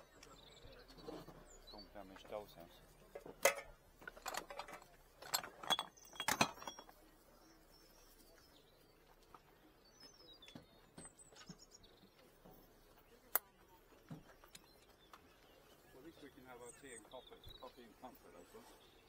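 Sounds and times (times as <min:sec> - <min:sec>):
small objects clinking: 0:03.4 - 0:07.0.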